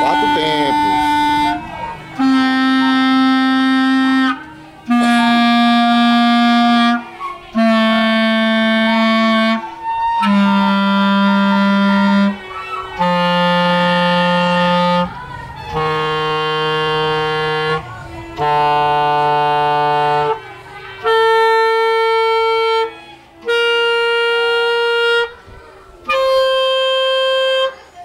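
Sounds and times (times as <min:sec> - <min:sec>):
clarinet long held notes: 0:00.0 - 0:28.0.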